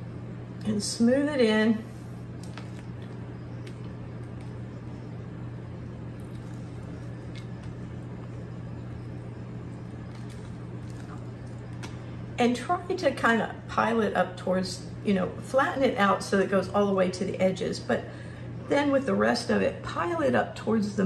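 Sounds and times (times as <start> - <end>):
low hum: 0.0 - 18.8.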